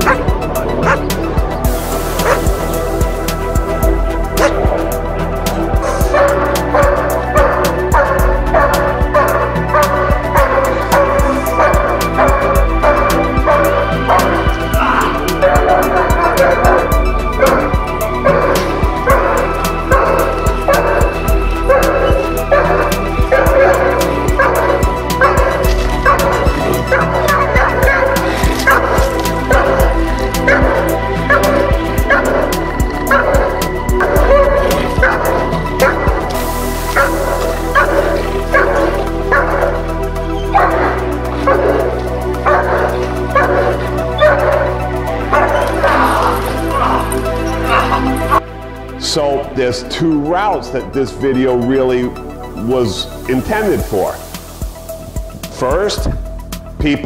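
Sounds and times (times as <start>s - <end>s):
dog barking: 0.0s - 1.2s, 2.0s - 48.5s
background music: 0.0s - 57.0s.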